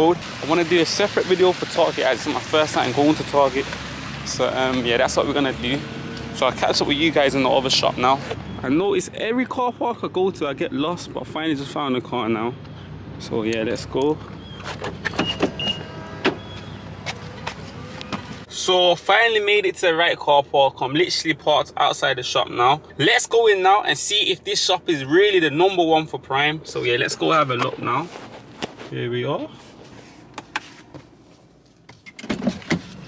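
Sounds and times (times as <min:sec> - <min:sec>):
car door unlatching and opening: 0:14.6 - 0:18.5.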